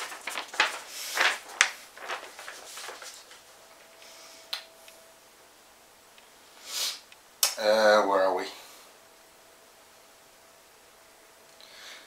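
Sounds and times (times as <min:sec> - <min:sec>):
paper rustling: 0:00.0 - 0:04.0.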